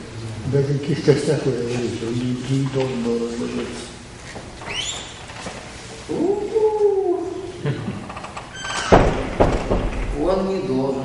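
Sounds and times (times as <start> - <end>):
short squeaks: 4.6 - 5.4.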